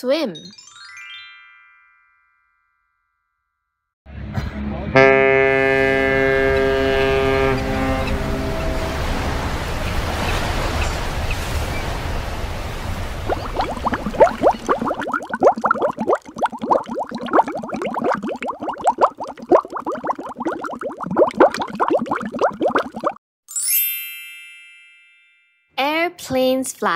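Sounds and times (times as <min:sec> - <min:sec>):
ship's horn blast: 0:04.6 - 0:10.8
sea waves: 0:05.6 - 0:23.2
underwater bubbles blipping: 0:13.1 - 0:23.2.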